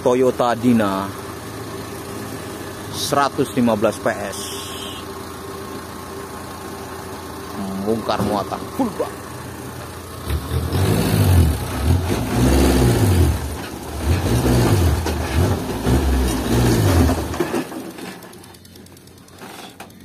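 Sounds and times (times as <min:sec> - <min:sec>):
truck engine idling: 0:00.0 - 0:20.0
truck engine revving: 0:00.1 - 0:19.8.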